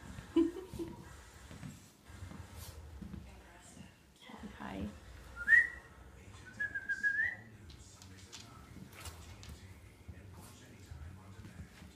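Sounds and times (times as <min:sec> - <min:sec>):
person whistling: 0:05.4 - 0:05.8, 0:06.6 - 0:07.4.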